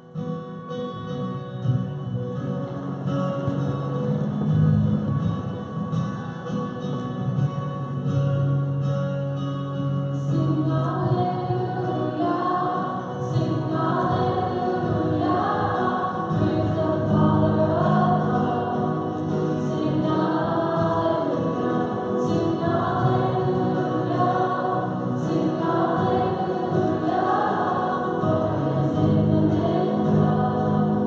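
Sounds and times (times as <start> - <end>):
choir singing a hymn: 10.6 - 31.0.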